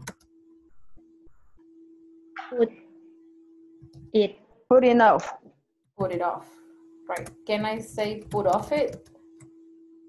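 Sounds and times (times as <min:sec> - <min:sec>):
keyboard clicks: 0:00.0 - 0:00.9, 0:07.1 - 0:09.5
low electronic hum: 0:00.0 - 0:10.0.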